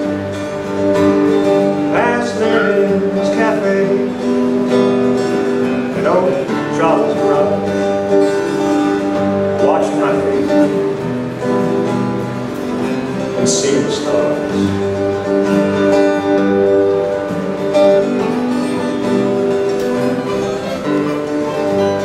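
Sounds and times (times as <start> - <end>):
acoustic guitar strumming chords: 0.0 - 22.0.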